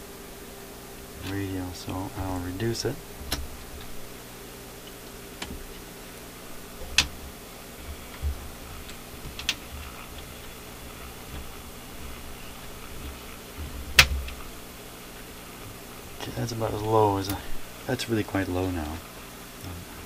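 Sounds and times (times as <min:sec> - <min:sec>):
low electrical hum: 0:00.0 - 0:20.0.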